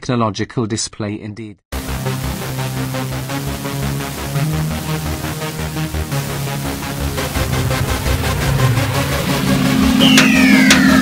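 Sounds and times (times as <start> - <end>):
low electronic drone: 1.8 - 11.0
falling pitched sweep: 3.7 - 11.0
ticking beat: 9.4 - 11.0.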